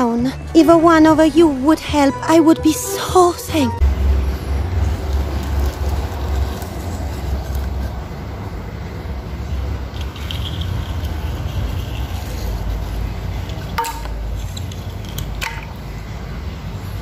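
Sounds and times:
toy cars rolling on tiles: 0:04.8 - 0:08.1, 0:09.9 - 0:15.8.

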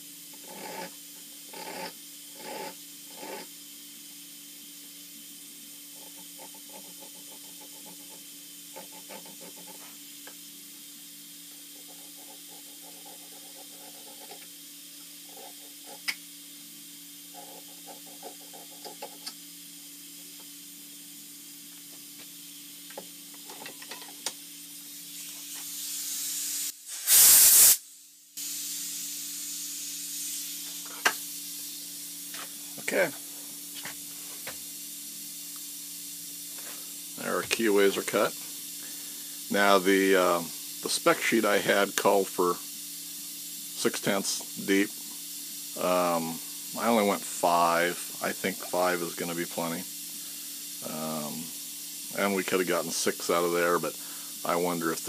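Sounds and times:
hiss: 0:00.0 - 0:55.0
workshop hum: 0:00.0 - 0:55.0.

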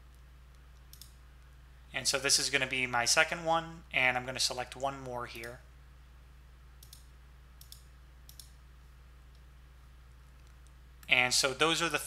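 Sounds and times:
faint low hum: 0:00.0 - 0:12.0
computer mouse clicking: 0:00.1 - 0:01.2, 0:06.8 - 0:08.6.

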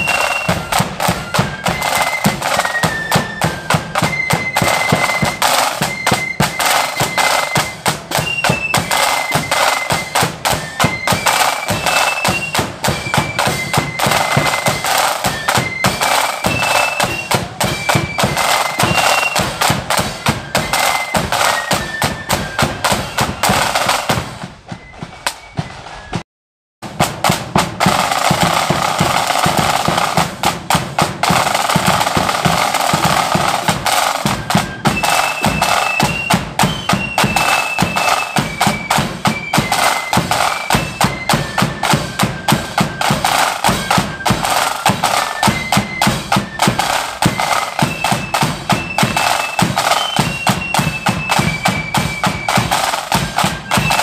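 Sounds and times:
flute melody: 0:00.0 - 0:26.2, 0:27.0 - 0:54.0
rapid snare drum strokes: 0:00.0 - 0:26.2, 0:26.8 - 0:54.0
bass drum beats: 0:26.8 - 0:35.7.

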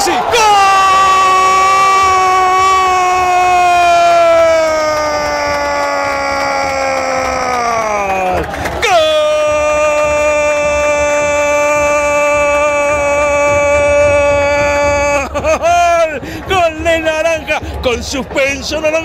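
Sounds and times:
commentator shouting: 0:00.0 - 0:19.0.

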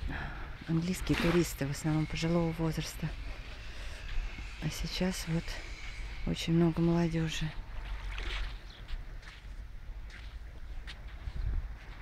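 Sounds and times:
wind rumbling on microphone: 0:00.0 - 0:12.0
waves lapping on sand: 0:00.6 - 0:04.2, 0:06.8 - 0:09.4.

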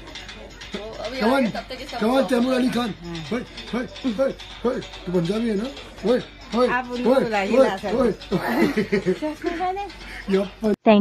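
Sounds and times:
person chuckling: 0:08.3 - 0:09.8.

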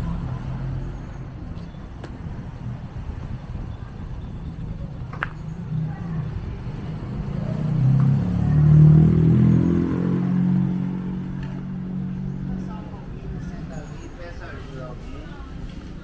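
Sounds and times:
vehicle engine passing by: 0:05.6 - 0:13.8.

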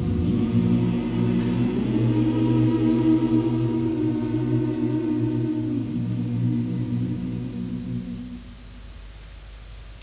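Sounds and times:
men's choir singing: 0:00.0 - 0:08.6.

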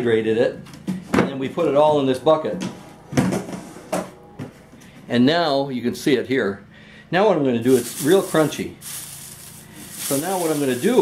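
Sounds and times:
faint rustle: 0:07.7 - 0:11.0.

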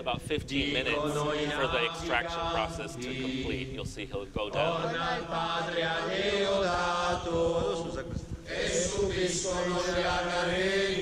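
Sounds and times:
group of voices chanting: 0:00.7 - 0:03.6, 0:04.6 - 0:07.9, 0:08.5 - 0:11.0.

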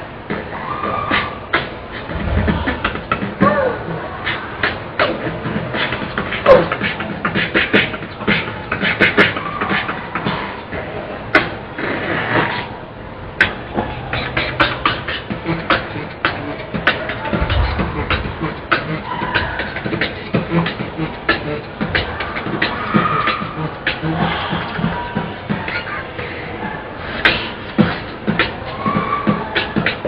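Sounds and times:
person beatboxing: 0:00.0 - 0:30.0.

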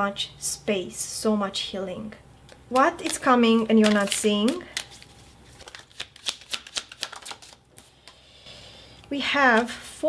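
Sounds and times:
cards being shuffled: 0:02.7 - 0:08.2.

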